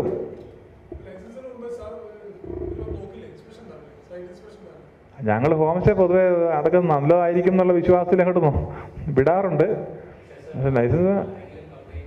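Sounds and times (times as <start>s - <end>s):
amplified lecture: 0.0s - 12.0s.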